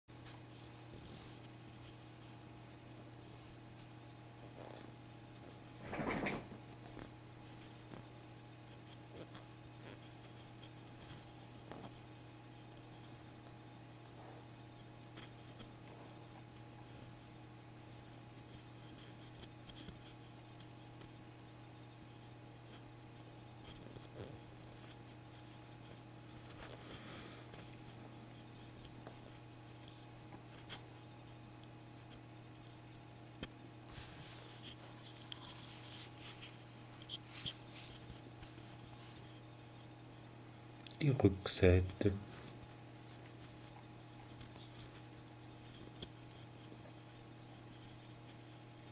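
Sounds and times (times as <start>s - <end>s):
low electrical hum: 0.1s - 48.9s.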